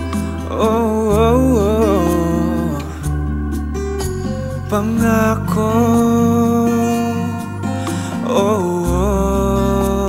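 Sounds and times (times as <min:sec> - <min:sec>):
backing chords and bass: 0:00.0 - 0:10.0
man singing vocal run: 0:00.4 - 0:03.2, 0:04.7 - 0:10.0.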